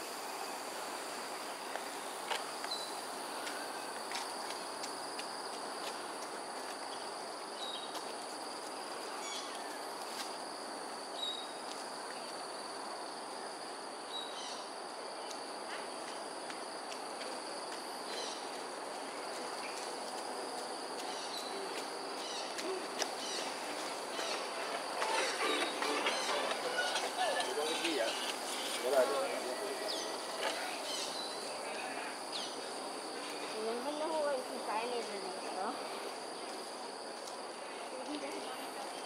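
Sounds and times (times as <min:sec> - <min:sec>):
background hiss: 0:00.0 - 0:39.0
high-pitched insect drone: 0:23.2 - 0:36.6.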